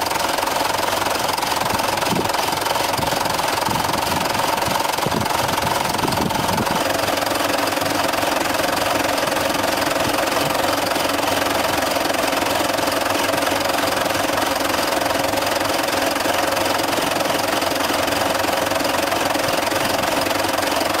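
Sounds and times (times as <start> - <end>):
tractor diesel engines clattering: 0.0 - 21.0.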